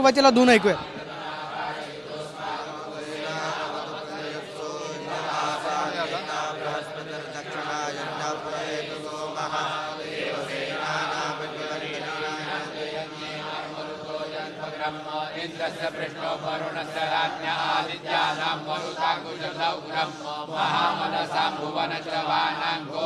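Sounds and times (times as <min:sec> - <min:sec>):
men chanting together: 0:00.2 - 0:23.0.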